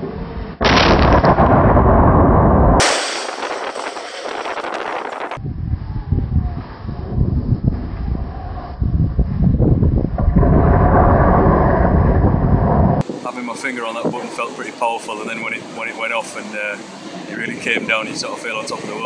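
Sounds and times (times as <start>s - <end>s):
deep rumble of tower collapsing: 0.4s - 13.0s
demolition blast: 0.6s - 5.4s, 9.7s - 13.0s.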